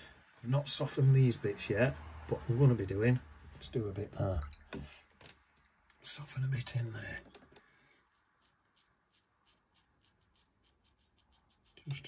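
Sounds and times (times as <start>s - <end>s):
brush dabbing on paper: 7.8s - 12.0s.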